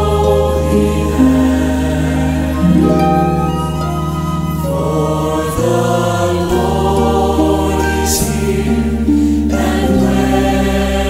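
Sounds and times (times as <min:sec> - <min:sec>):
choir singing held notes: 0:00.0 - 0:11.0
instrumental accompaniment: 0:00.6 - 0:07.3.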